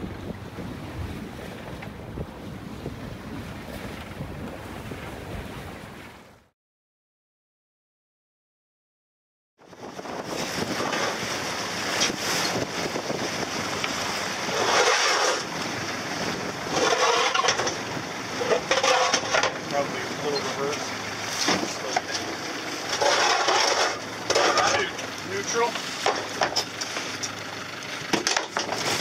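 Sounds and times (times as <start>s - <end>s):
wind on microphone: 0.0s - 6.4s, 9.6s - 20.9s
small boat engine hum: 0.0s - 6.5s, 9.6s - 29.0s.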